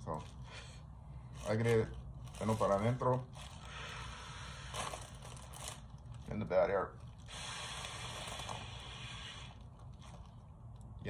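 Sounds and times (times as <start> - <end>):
plastic bag crinkling: 1.2 - 10.8
breath blown into plastic bag: 3.5 - 5.7, 7.2 - 10.3.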